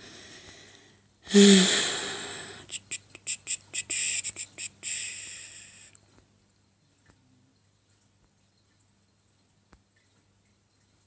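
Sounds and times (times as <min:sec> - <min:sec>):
breathy exhale: 0:00.0 - 0:02.7, 0:04.8 - 0:06.0
woman whispering: 0:02.6 - 0:06.0.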